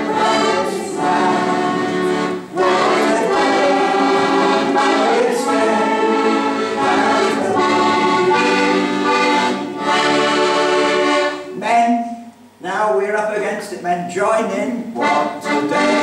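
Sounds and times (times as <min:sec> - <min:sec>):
accordion playing chords: 0:00.0 - 0:12.4, 0:14.7 - 0:16.0.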